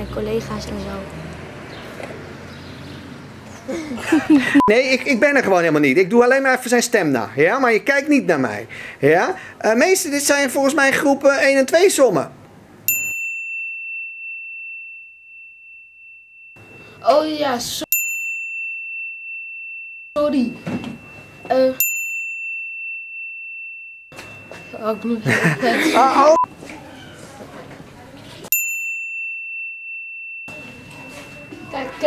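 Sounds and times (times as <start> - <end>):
high bell-like ding: 12.9 - 26.5, 28.5 - 32.0.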